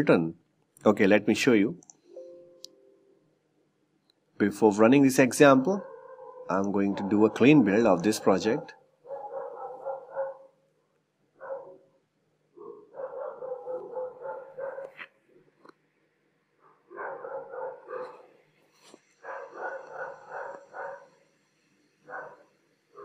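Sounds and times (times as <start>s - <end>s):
faint high whine: 0.0s - 5.8s.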